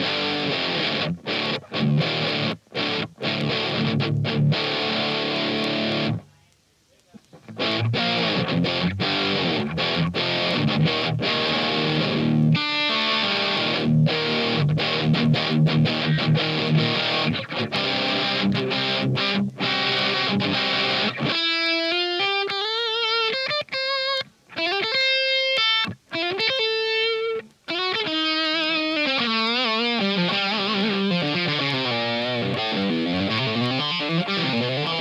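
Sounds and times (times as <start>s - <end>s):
distorted electric guitar: 0.0s - 6.4s, 7.0s - 35.0s.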